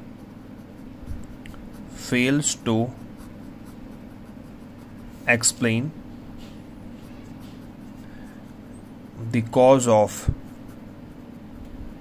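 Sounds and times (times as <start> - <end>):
pen scratching on paper: 0.0 - 12.0
steady low hum: 0.0 - 12.0.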